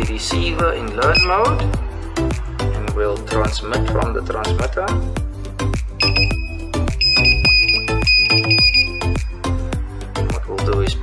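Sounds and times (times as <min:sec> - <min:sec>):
background music with beat: 0:00.0 - 0:11.0
long high buzzer beep: 0:06.0 - 0:09.4.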